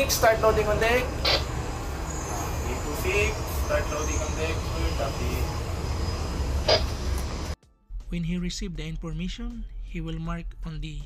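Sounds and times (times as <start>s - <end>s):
low machinery rumble: 0.0s - 7.6s.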